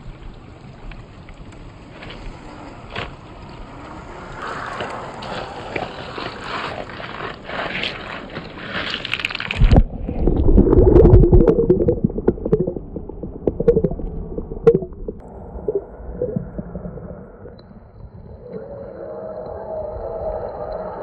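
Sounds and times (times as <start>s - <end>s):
water splashing and sloshing: 0.0s - 18.6s
muffled underwater sound: 9.7s - 21.0s.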